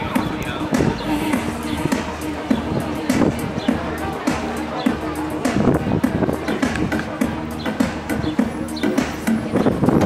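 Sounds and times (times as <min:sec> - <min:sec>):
music over sound system: 0:00.0 - 0:10.0.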